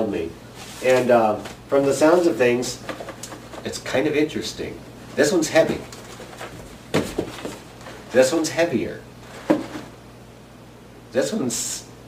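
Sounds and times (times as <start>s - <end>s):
faint steady hum: 0.0s - 12.0s
knock on cardboard box: 6.9s - 7.6s, 9.4s - 9.9s.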